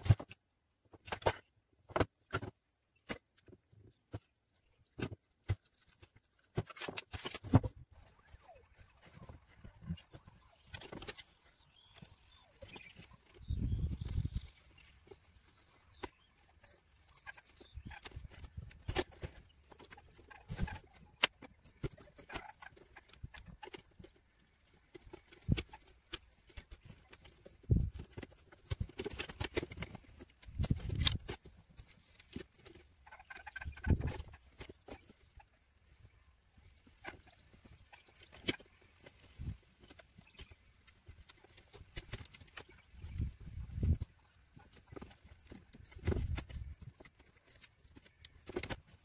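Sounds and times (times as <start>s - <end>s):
hands handling wiring and tape: 0.0s - 8.0s, 24.8s - 32.8s, 44.7s - 49.0s.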